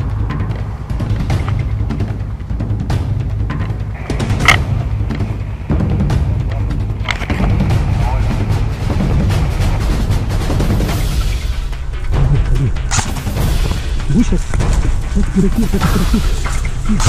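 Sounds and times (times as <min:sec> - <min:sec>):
music with pulsing low beat: 0:00.0 - 0:17.0
sharp clicks: 0:03.5 - 0:05.2, 0:12.5 - 0:17.0.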